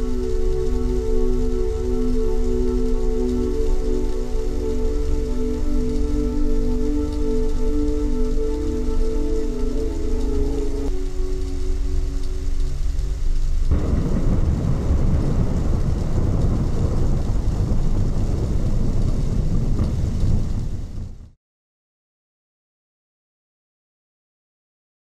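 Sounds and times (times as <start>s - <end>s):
sustained ambient chord: 0.0s - 16.6s
low rumble: 11.0s - 21.4s
dense rumbling noise: 11.2s - 21.4s.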